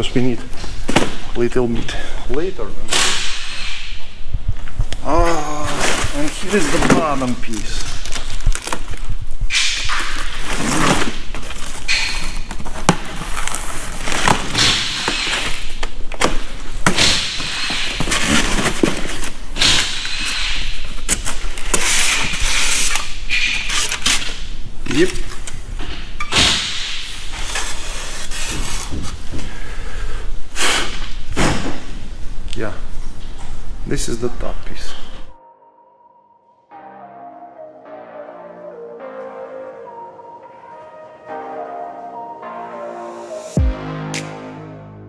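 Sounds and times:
rustling of cardboard and foam: 4.5s - 9.2s, 9.9s - 26.2s, 27.1s - 29.8s.

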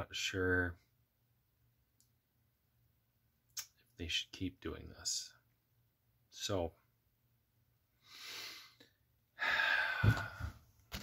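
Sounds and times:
person breathing: 8.0s - 10.7s.

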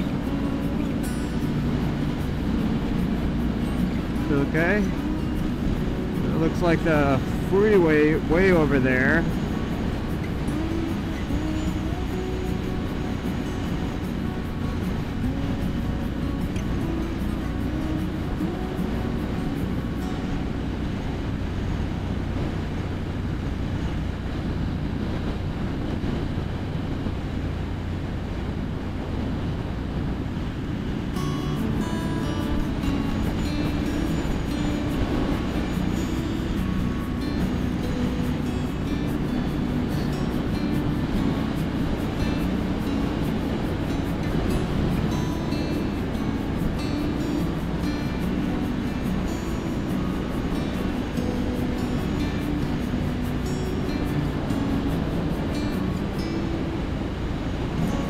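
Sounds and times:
music playing: 0.0s - 22.7s, 30.8s - 58.0s
motorcycle engine cruising: 0.0s - 58.0s
wind noise on microphone: 0.0s - 58.0s.

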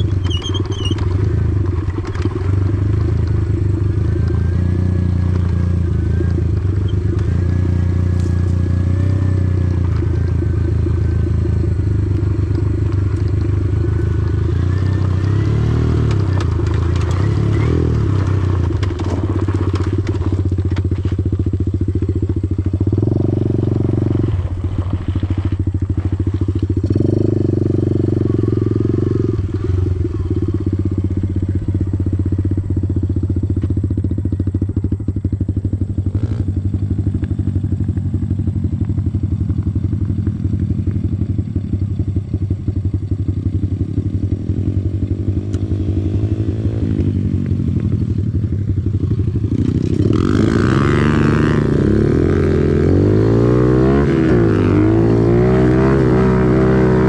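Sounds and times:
pit bike engine running: 0.0s - 57.0s.

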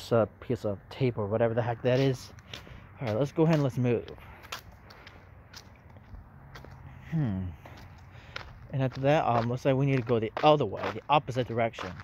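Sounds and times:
footsteps on concrete: 1.8s - 12.0s.

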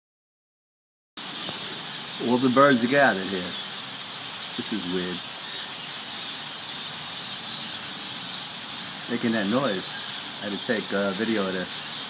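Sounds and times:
flock of birds chirping: 1.2s - 12.0s.

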